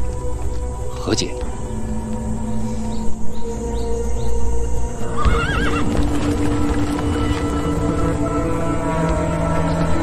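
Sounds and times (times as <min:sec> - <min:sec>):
background music: 0:00.0 - 0:10.0
horse whinnying: 0:05.1 - 0:06.0.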